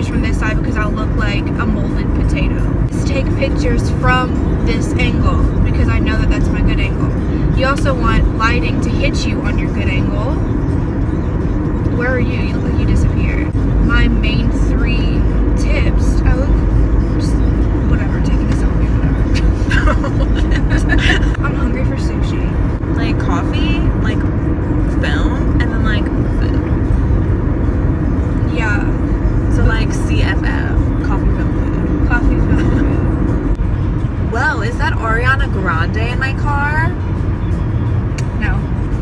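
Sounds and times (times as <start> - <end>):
car cabin road rumble: 0.0 - 39.0.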